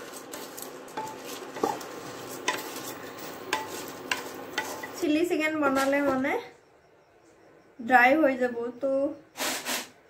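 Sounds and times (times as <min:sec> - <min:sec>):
spatula stirring rice in a pan: 0:00.0 - 0:05.0
frying sizzle: 0:00.0 - 0:06.0
spatula knocking against pan: 0:03.5 - 0:05.0.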